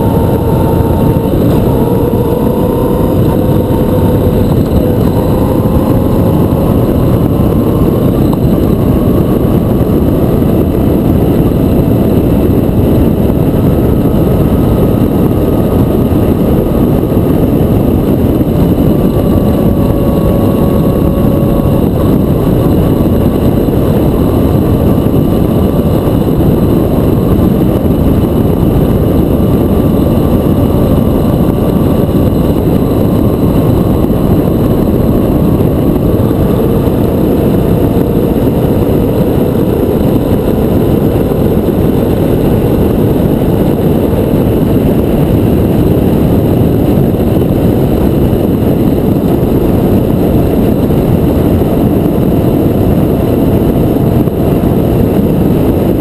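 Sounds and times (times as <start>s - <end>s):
motorcycle engine running: 0.0s - 56.0s
wind rush on microphone: 0.0s - 56.0s.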